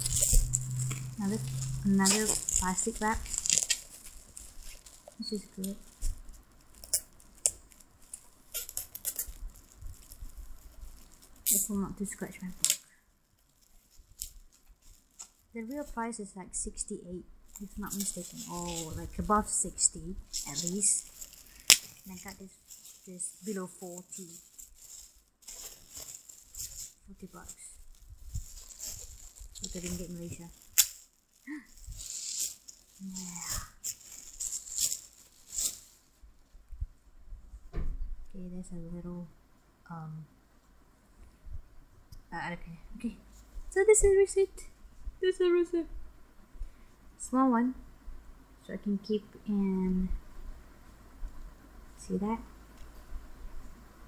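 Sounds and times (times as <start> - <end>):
plastic bag crinkling: 0.0 - 16.0, 17.5 - 36.2.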